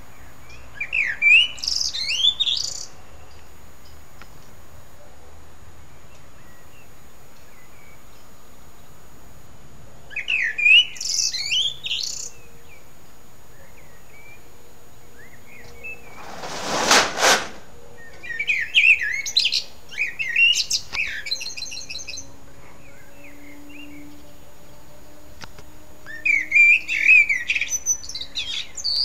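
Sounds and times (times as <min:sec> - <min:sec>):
songbird singing: 0:05.8 - 0:09.1, 0:10.1 - 0:16.2, 0:18.0 - 0:29.0
short loud rushing noise: 0:16.1 - 0:17.7.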